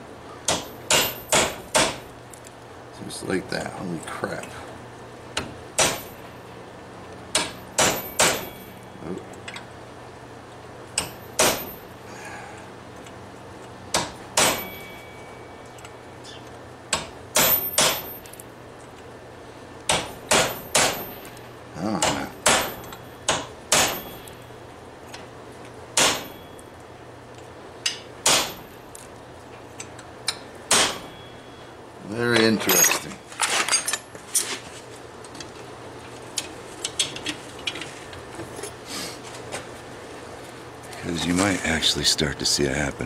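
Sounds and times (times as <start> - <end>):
hammer striking steel punch: 0.5 - 2.0, 5.8 - 6.2, 7.3 - 8.6, 11.0 - 11.8, 13.9 - 15.2, 16.9 - 18.2, 19.9 - 21.2, 22.0 - 24.3, 26.0 - 26.5, 27.9 - 28.6, 30.7 - 31.3.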